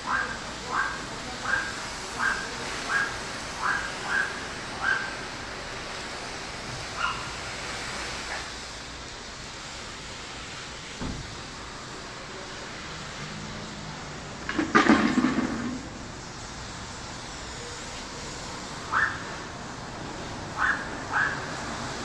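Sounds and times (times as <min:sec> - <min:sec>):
garden hose spraying water: 0:00.0 - 0:22.0.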